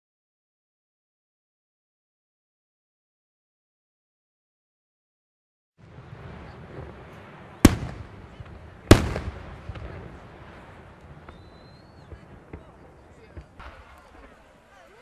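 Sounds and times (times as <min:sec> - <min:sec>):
low rumble and crackle: 0:05.8 - 0:15.0
rolling echo: 0:05.9 - 0:15.0
firework shells bursting: 0:07.5 - 0:14.6.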